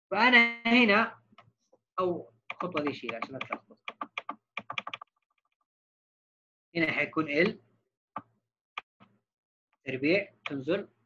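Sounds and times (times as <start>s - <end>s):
computer keyboard clicks: 2.5s - 5.1s.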